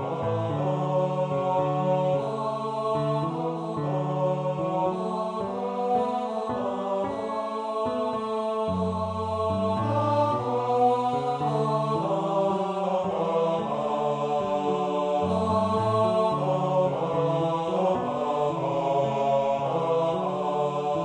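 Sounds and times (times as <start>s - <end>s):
choir singing: 0.0s - 21.0s
piano accompaniment: 0.0s - 21.0s.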